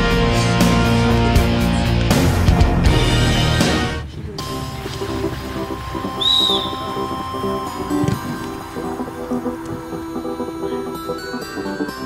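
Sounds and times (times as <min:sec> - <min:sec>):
background music: 0:00.0 - 0:12.0
referee's whistle blast: 0:06.1 - 0:07.2.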